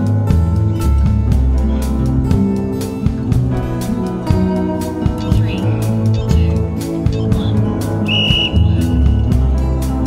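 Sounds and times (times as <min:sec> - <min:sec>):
guitar-led song: 0:00.0 - 0:10.0.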